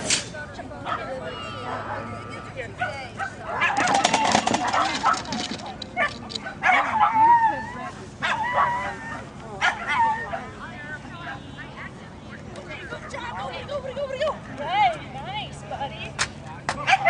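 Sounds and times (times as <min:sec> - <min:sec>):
dog yipping and barking: 0:06.0 - 0:07.6, 0:08.2 - 0:10.5.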